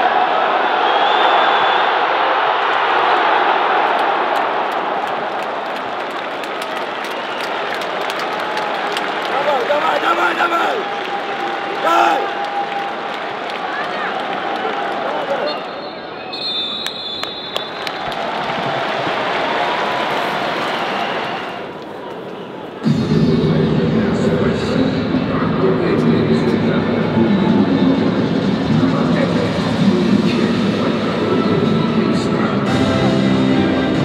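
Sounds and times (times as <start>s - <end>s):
noisy stadium crowd: 0.0s - 34.0s
background music: 22.9s - 34.0s.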